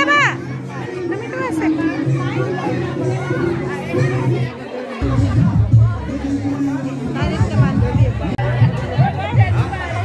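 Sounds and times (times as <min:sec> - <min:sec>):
young child talking: 0:00.0 - 0:05.6
adults talking: 0:00.0 - 0:10.0.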